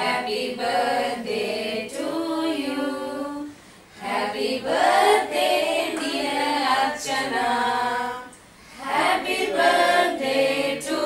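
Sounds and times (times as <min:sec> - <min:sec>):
group singing a birthday song: 0:00.0 - 0:11.0.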